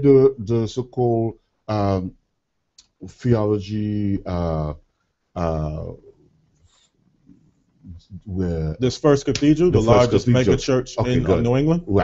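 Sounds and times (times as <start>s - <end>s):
man speaking: 0.0s - 2.1s, 2.8s - 4.8s, 5.4s - 6.1s, 7.9s - 12.0s
soft hiss: 0.0s - 12.0s.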